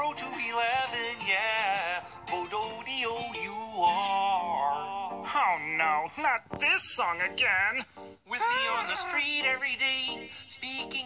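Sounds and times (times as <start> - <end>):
pop song through tv speaker: 0.0 - 11.0
puppet-style voice singing: 0.0 - 11.0
person speaking: 5.4 - 10.9.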